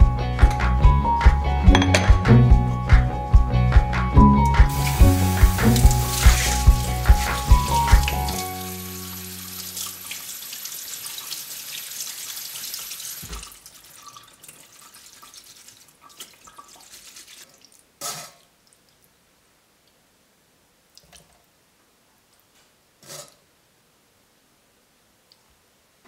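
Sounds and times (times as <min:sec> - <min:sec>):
background music with a beat: 0:00.0 - 0:08.6.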